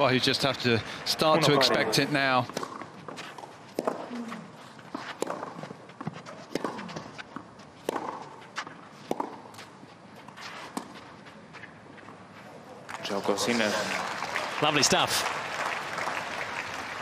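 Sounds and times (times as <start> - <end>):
tennis racket hitting ball: 2.5 - 11.1.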